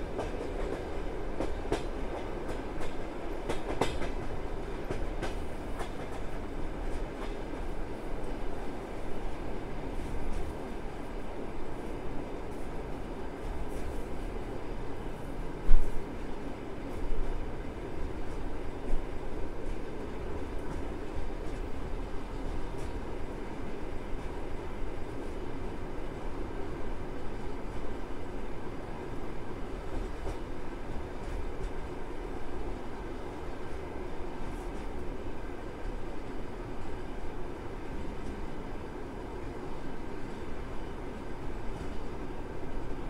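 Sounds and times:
train wheels rumbling on rails: 0:00.0 - 0:43.0.

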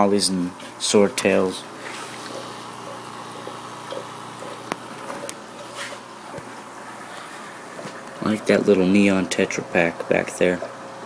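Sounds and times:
aquarium air stone bubbling: 0:00.8 - 0:11.0.

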